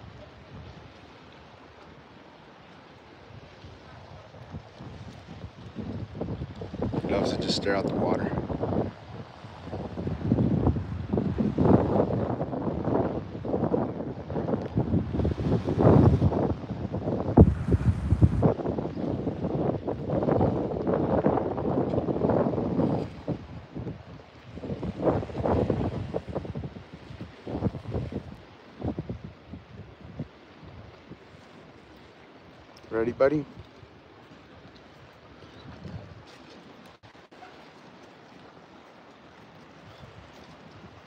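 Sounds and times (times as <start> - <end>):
wind buffeting microphone: 0.0 - 1.0, 3.3 - 31.5, 32.9 - 37.2.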